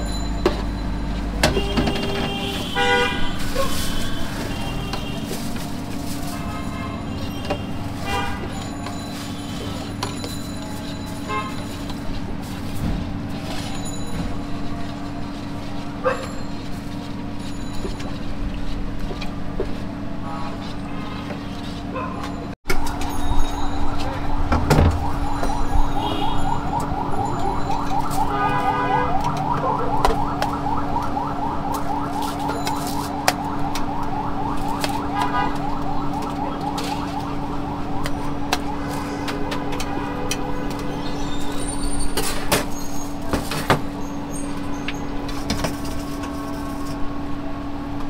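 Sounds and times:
fast warbling siren-like tone: 0:22.7 - 0:39.2.

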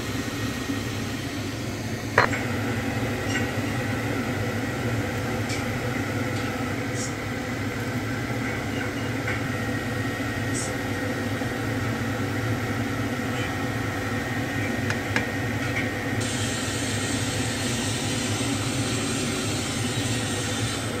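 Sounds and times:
appliance fan humming: 0:00.0 - 0:21.0.

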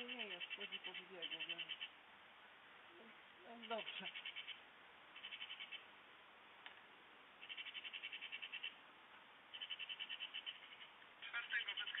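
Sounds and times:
animal rattling call: 0:00.0 - 0:01.9, 0:03.6 - 0:04.6, 0:05.2 - 0:05.9, 0:07.4 - 0:08.8, 0:09.5 - 0:12.0.

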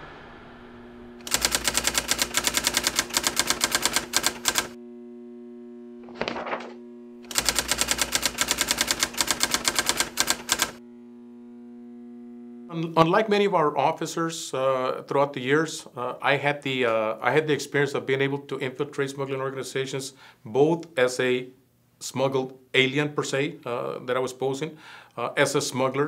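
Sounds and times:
low drone hum: 0:00.0 - 0:02.0, 0:10.8 - 0:14.0
typewriter key strikes: 0:01.2 - 0:04.8, 0:07.3 - 0:10.8.

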